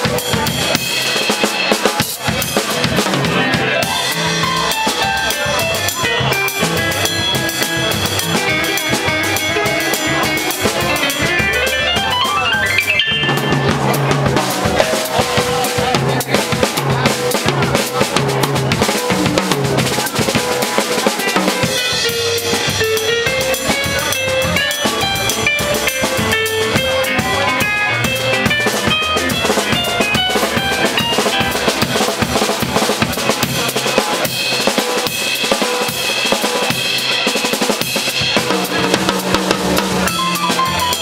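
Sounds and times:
drum kit played with sticks: 0:00.0 - 0:41.0
electric keyboard runs: 0:03.5 - 0:14.5, 0:39.8 - 0:41.0.

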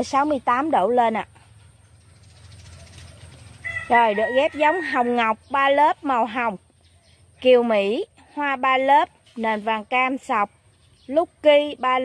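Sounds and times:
woman speaking: 0:00.0 - 0:01.4, 0:03.9 - 0:06.6, 0:07.4 - 0:10.5, 0:11.1 - 0:12.0
low steady rumble: 0:00.0 - 0:08.3
chickens clucking: 0:01.2 - 0:07.4.

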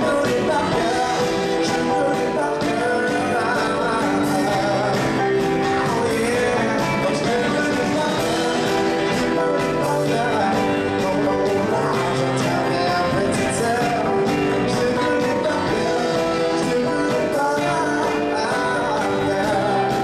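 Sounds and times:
bass guitar: 0:00.0 - 0:20.0
drums: 0:00.0 - 0:20.0
electric guitar: 0:00.0 - 0:20.0
man singing: 0:00.0 - 0:20.0.

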